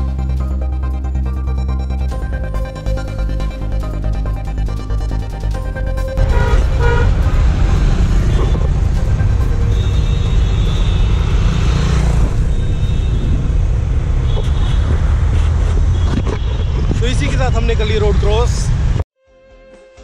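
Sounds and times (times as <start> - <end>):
heavy low rumble: 6.2 - 11.3
road traffic passing: 6.2 - 19.0.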